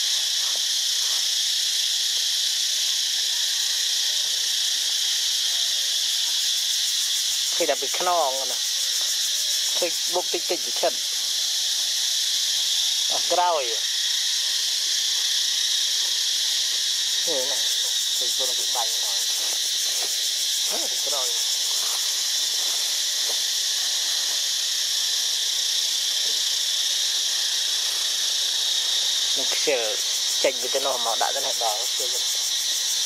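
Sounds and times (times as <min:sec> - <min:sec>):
forest insects droning: 0:00.0 - 0:33.0.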